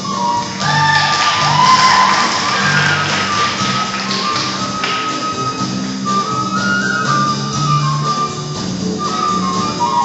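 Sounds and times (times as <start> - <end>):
jazz band playing: 0.0 - 10.0
low bass line: 0.0 - 10.0.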